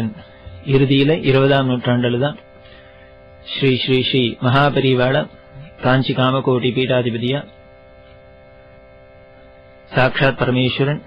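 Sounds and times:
people talking: 0.0 - 2.4, 3.5 - 7.6, 9.9 - 11.0
steady drone of held tones: 0.0 - 11.0.

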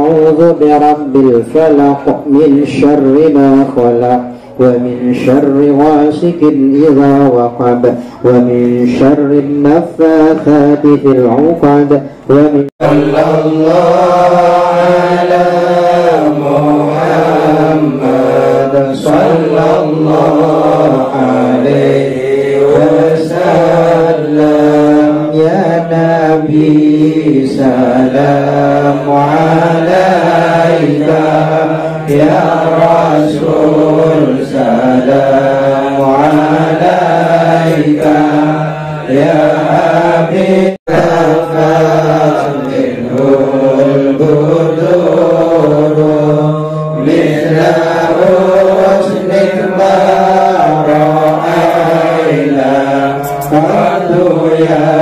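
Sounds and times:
men chanting a prayer: 0.0 - 55.0.

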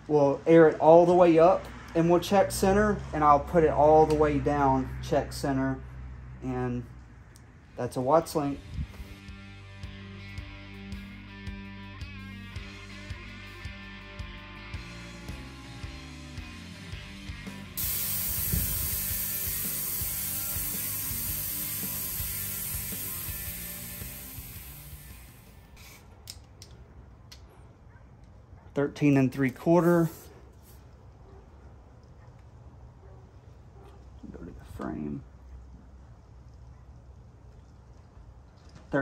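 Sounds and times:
loud hiss of air: 17.8 - 26.0
ratchet wrench clicking: 17.8 - 26.5.

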